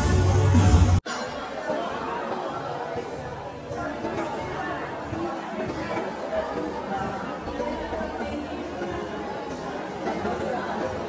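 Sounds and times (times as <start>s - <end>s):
murmur of overlapping conversation: 1.0s - 11.0s.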